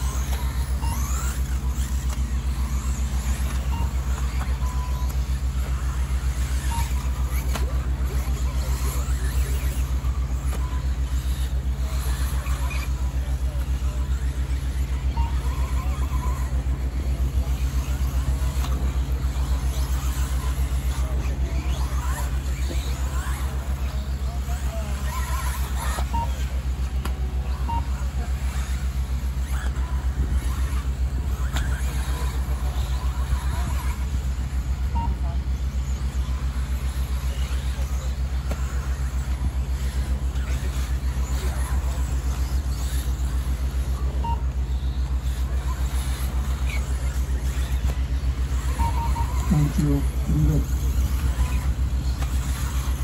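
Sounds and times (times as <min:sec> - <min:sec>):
loud pulsing low hum: 0:00.0 - 0:53.0
rc car motors whining: 0:00.0 - 0:53.0
steady low rumble: 0:00.0 - 0:53.0.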